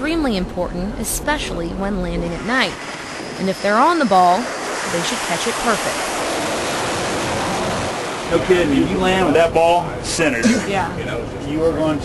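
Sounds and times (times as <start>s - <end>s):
steady rushing roar: 0.0s - 12.0s.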